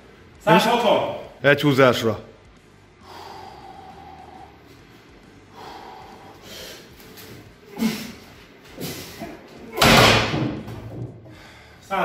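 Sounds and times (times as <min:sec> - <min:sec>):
man breathing hard through nose: 0:03.0 - 0:09.4, 0:11.2 - 0:11.8.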